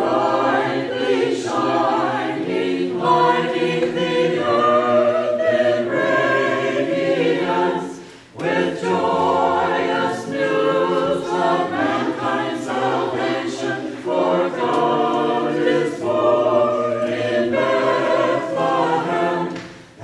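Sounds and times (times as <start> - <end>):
choir singing a cappella: 0.0 - 20.0.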